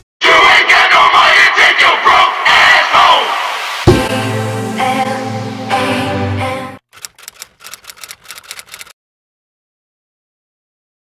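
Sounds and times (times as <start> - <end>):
typewriter key clicks: 6.9 - 8.9.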